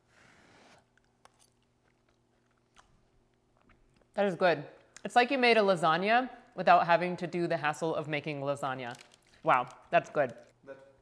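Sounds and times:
faint chewing: 0.7 - 4.2.

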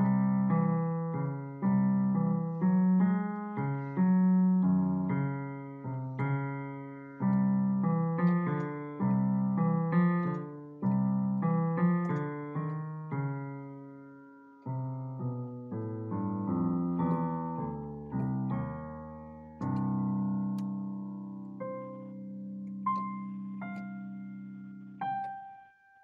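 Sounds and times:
solo piano chords: 0.0 - 26.0.

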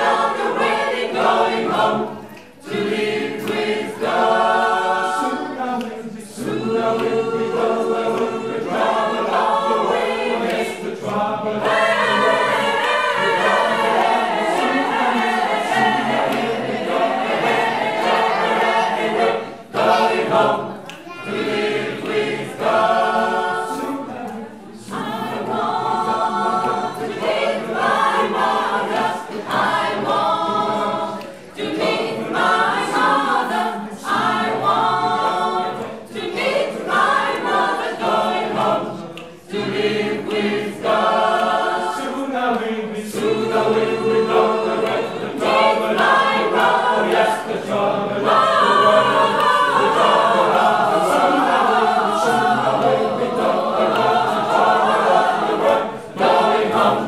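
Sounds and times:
mixed choir singing a cappella: 0.0 - 57.0.

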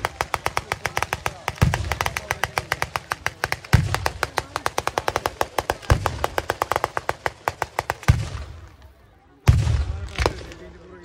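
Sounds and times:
fireworks cracking bangs: 0.0 - 10.7.

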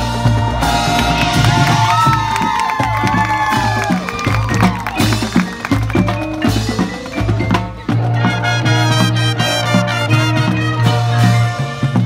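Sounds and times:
marching band playing: 0.0 - 12.0.

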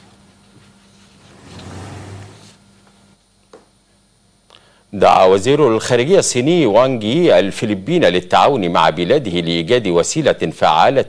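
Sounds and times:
car passing by: 1.3 - 2.6.

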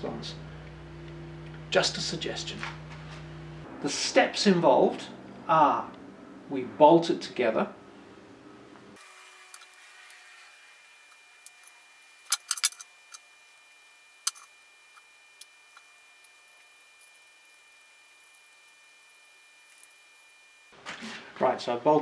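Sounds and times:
small screwdriver handled: 11.4 - 13.2
plastic parts clicking and tapping: 12.3 - 13.2.

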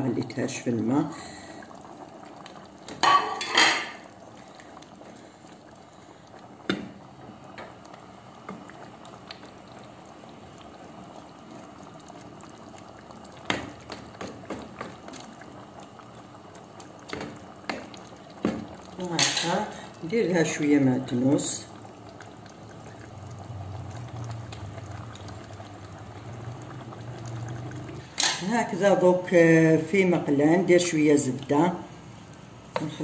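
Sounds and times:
sauce bubbling in a pan: 0.0 - 33.0.

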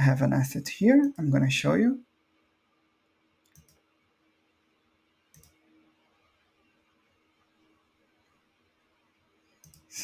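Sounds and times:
computer mouse clicks: 3.4 - 3.9, 5.3 - 5.6, 9.5 - 9.9.

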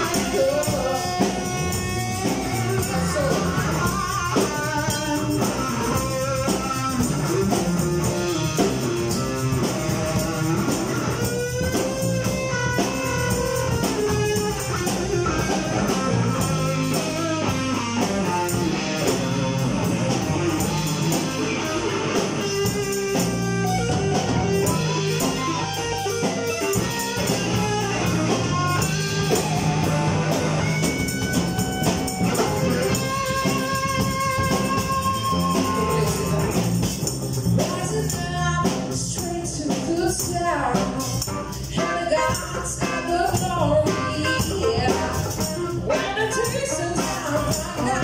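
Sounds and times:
bass guitar: 0.0 - 48.0
drum kit: 0.0 - 48.0
electric guitar: 0.0 - 48.0.

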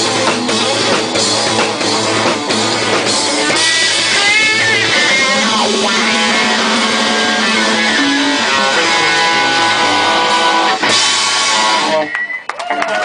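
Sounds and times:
live rock band playing: 0.0 - 13.0
audience shouting: 11.5 - 13.0
audience clapping: 12.0 - 13.0.

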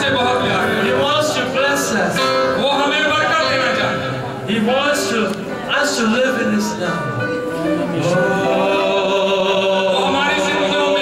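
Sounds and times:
man singing worship song: 8.0 - 11.0.

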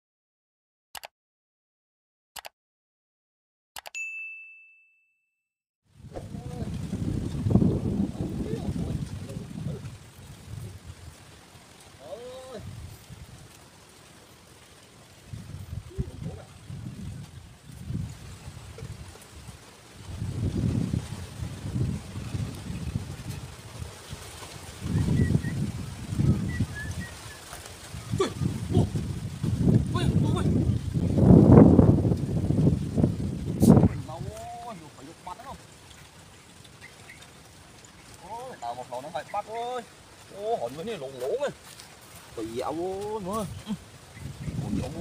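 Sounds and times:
wind buffeting microphone: 5.9 - 13.6, 15.0 - 39.0, 39.6 - 45.0
faint outdoor hiss: 6.0 - 45.0
person vocalizing: 28.1 - 29.0.

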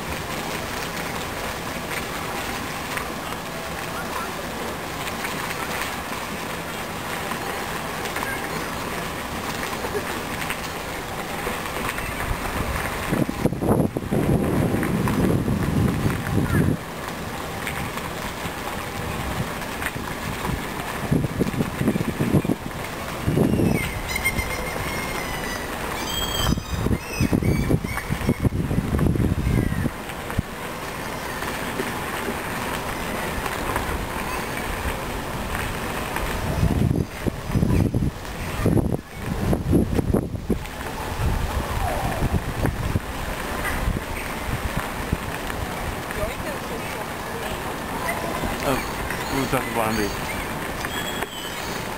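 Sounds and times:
wind gusting on microphone: 12.0 - 30.7, 33.2 - 50.8.

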